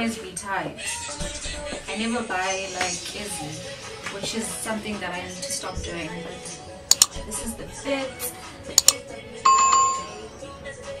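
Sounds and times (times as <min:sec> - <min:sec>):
background music: 0:00.0 - 0:11.0
notification bell ding: 0:09.5 - 0:10.3.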